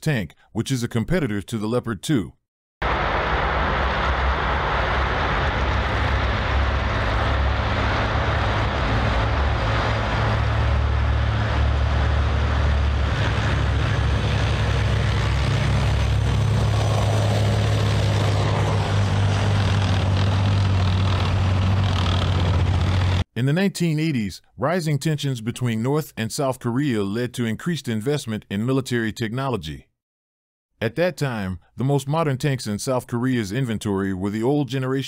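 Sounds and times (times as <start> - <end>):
rushing noise of tracks: 2.8 - 23.2
tank engine drone: 2.8 - 23.2.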